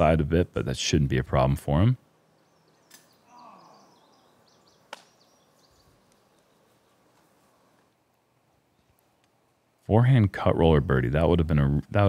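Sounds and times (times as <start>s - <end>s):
faint outdoor ambience: 0.0s - 12.0s
sharp click: 2.8s - 3.2s, 4.9s - 5.2s.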